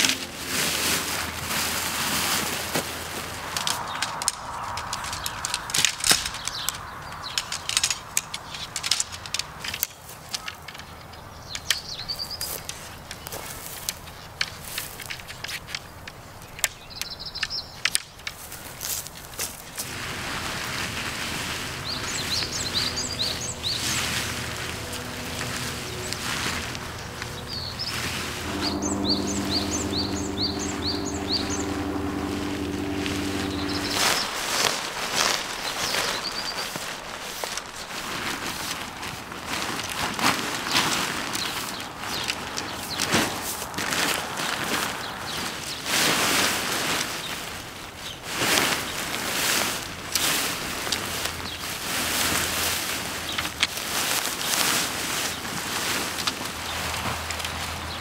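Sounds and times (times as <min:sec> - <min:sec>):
rustling fabric and bags: 0:00.0 - 0:04.1, 0:18.3 - 0:58.0
soft sustained tones: 0:00.0 - 0:05.6, 0:19.8 - 0:35.3
birds chirping: 0:03.7 - 0:08.8, 0:20.2 - 0:34.6.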